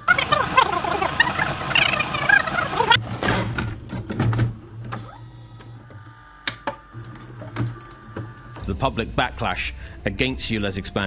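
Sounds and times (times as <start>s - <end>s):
fast garbled speech: 0.1s - 3.0s.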